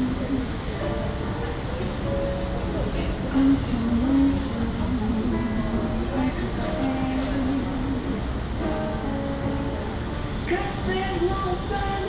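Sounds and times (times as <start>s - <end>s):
low outdoor rumble: 0.0s - 12.0s
music with long held notes: 0.0s - 12.0s.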